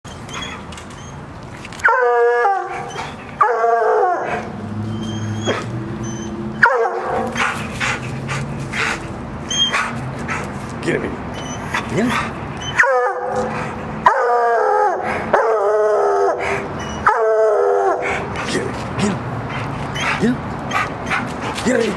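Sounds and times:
hound baying: 1.8 - 10.5, 11.4 - 21.9.

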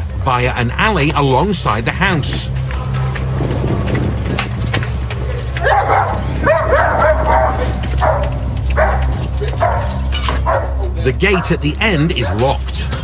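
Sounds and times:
dog barking: 5.6 - 11.6.

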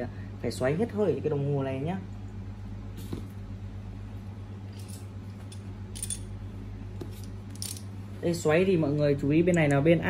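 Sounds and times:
steady low hum: 0.0 - 10.0
small parts clicking: 7.5 - 7.9.

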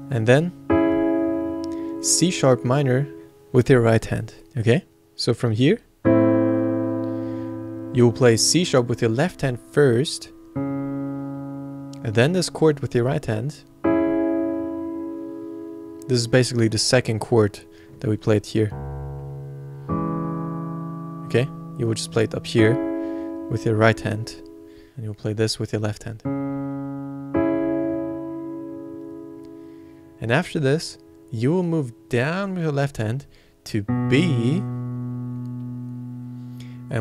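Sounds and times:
piano bass note ringing: 0.0 - 4.1, 6.0 - 24.9, 26.2 - 32.4, 33.8 - 37.0
piano minor chord: 0.0 - 4.4, 6.0 - 25.0, 26.2 - 32.7, 33.8 - 37.0.

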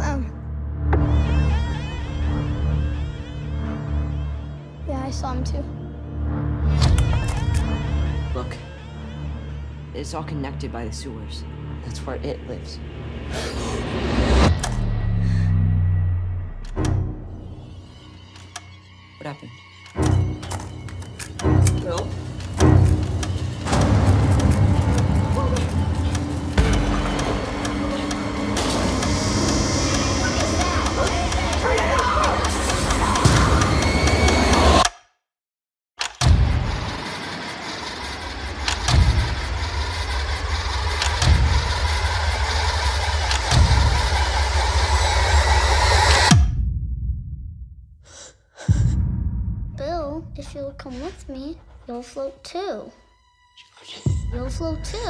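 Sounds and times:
slide projector clacking: 20.9 - 34.6.

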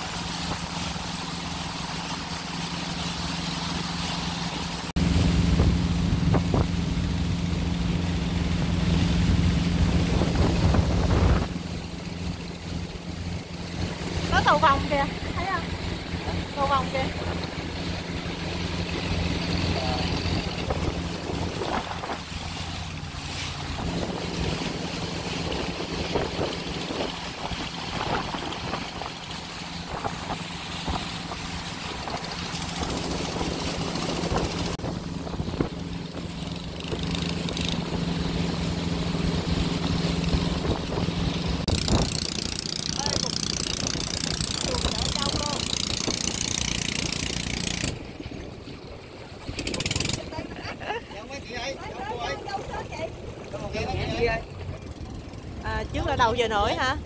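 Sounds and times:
boat engine running: 0.0 - 57.0
water rushing past hull: 0.0 - 57.0.

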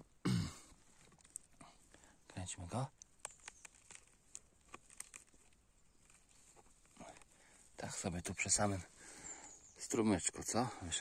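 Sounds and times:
faint clicks and rustles: 0.7 - 2.3, 2.9 - 9.8.

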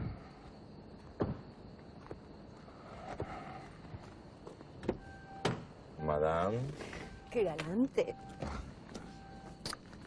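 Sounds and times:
faint steady tone: 0.0 - 10.0.

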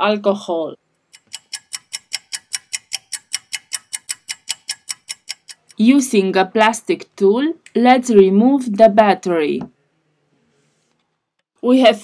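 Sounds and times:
fast clock ticking: 1.1 - 5.8.

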